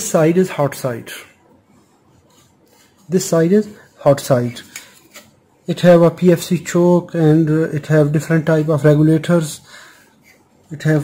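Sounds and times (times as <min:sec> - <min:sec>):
faint rubbing and handling noise: 0:00.0 - 0:11.0.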